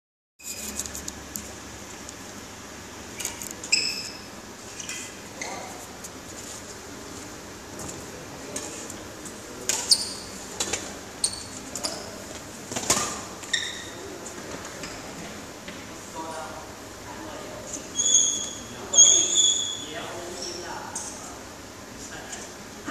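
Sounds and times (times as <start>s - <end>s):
steady hall hum: 0.4s - 22.9s
shoes squeaking on court floor: 3.2s - 6.7s, 9.6s - 15.1s, 17.7s - 20.7s.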